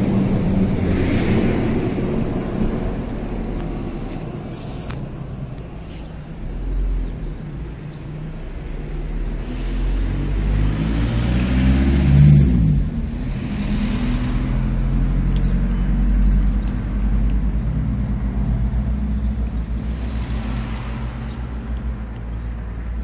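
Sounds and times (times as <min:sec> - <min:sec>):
passing traffic: 0:00.0 - 0:23.0.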